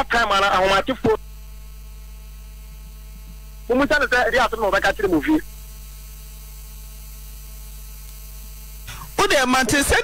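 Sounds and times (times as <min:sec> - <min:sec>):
electrical mains hum: 0:00.0 - 0:10.0
person talking: 0:03.7 - 0:05.5, 0:09.0 - 0:10.0.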